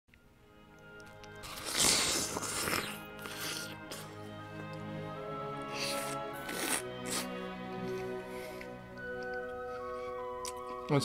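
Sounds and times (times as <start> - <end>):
background music with held notes: 0.1 - 11.0
crunching bite into watermelon: 1.3 - 4.1, 5.8 - 7.3.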